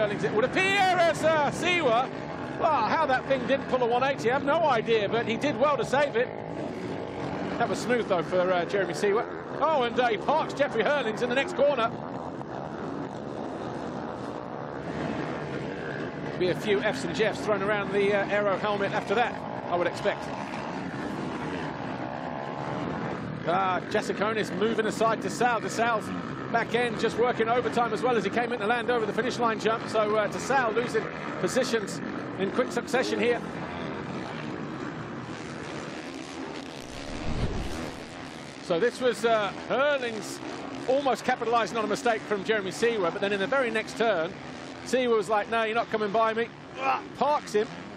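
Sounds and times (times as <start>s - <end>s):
motocross bike engines revving: 0.0s - 47.9s
low rumble: 36.8s - 38.2s.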